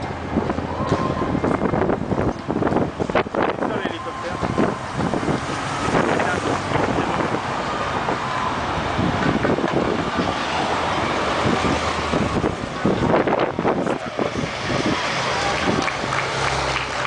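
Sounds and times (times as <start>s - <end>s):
cars passing: 0.0s - 17.0s
motorcycles passing: 0.0s - 17.0s
wind noise on microphone: 0.0s - 17.0s.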